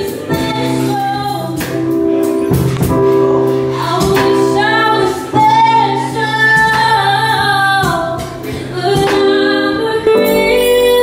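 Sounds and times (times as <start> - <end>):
jazz band playing: 0.0 - 11.0
woman singing jazz: 0.0 - 11.0.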